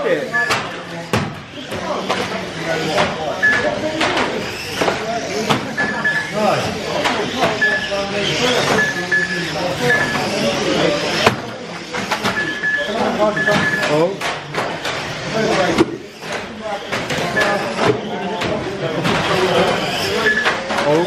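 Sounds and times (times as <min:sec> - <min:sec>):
hubbub of voices: 0:00.0 - 0:21.0
radio-controlled cars racing: 0:00.0 - 0:21.0
short high electronic beeps: 0:08.8 - 0:10.3, 0:12.4 - 0:13.9.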